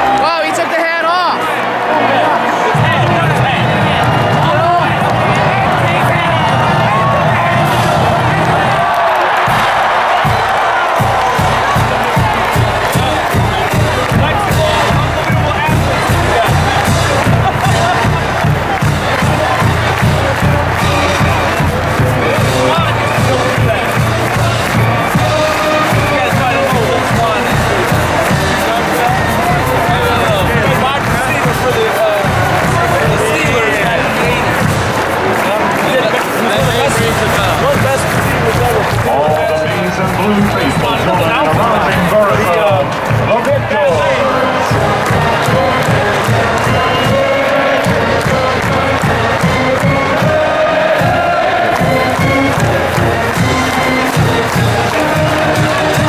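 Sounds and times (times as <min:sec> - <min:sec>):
marching band playing: 0:00.0 - 0:56.0
stadium crowd cheering: 0:00.0 - 0:56.0.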